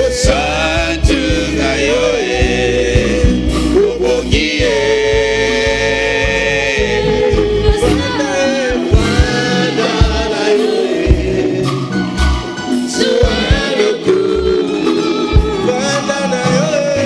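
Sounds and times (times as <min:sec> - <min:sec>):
band playing: 0:00.0 - 0:17.0
drum beats: 0:00.0 - 0:17.0
voices singing held notes: 0:00.0 - 0:17.0.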